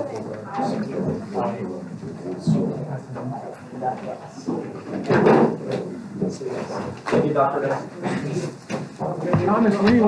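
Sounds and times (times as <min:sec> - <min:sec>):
people talking indistinctly: 0:00.0 - 0:10.0
knocks and clatter of furniture: 0:04.0 - 0:10.0.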